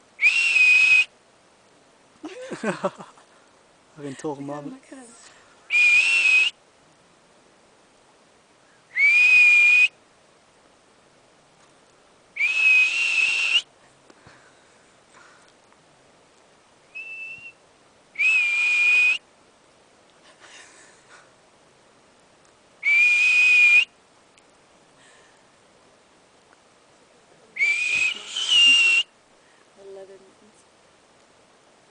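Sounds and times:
person whistling: 0:00.2 - 0:01.1, 0:05.7 - 0:06.5, 0:08.9 - 0:09.9, 0:12.4 - 0:13.7, 0:17.0 - 0:17.6, 0:18.2 - 0:19.2, 0:22.8 - 0:23.9, 0:27.6 - 0:29.1
marmot alarm whistle: 0:27.6 - 0:29.1.

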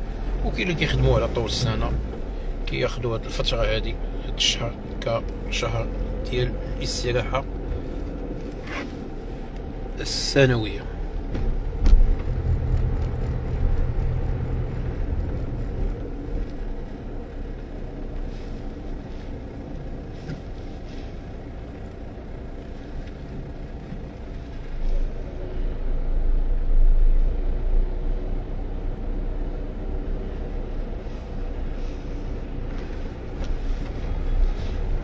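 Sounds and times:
car road noise from inside: 0:00.0 - 0:35.0.

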